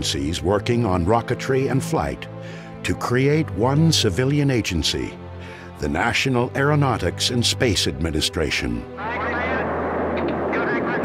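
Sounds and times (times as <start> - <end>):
rocket launch roar: 9.3 - 11.0.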